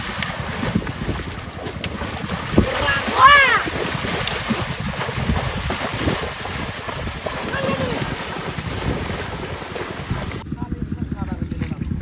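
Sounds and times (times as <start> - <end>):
water splashing and sloshing: 0.0 - 10.4
wind buffeting microphone: 0.0 - 12.0.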